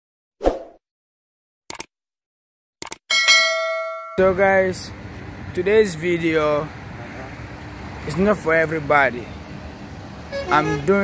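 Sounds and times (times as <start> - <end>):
quick double clicks: 1.7 - 1.9, 2.8 - 3.0
bell ding: 3.1 - 4.3.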